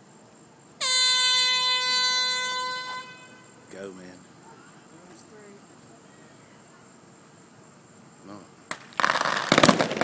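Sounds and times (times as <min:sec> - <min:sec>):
air horn long blast: 0:00.8 - 0:03.6.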